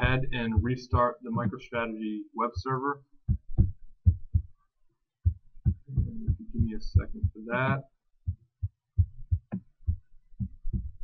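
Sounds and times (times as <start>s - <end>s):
low dull thumps: 0.0s - 1.9s, 2.5s - 4.6s, 5.2s - 11.0s.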